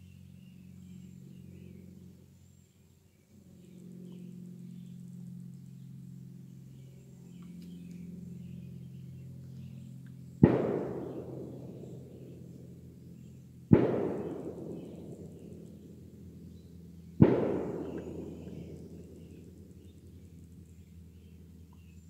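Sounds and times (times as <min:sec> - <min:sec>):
loud echoing bangs: 0:10.4 - 0:12.8, 0:13.7 - 0:16.6, 0:17.2 - 0:19.9.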